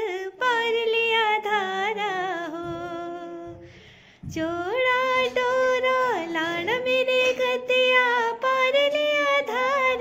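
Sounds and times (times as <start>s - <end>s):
woman singing unaccompanied: 0.0s - 3.7s, 4.3s - 10.0s.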